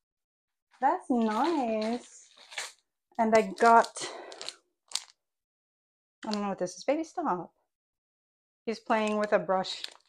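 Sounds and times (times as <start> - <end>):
plastic packaging crinkling: 1.1 - 5.1, 8.9 - 10.0
plastic crackle: 1.2 - 5.2, 8.9 - 10.0.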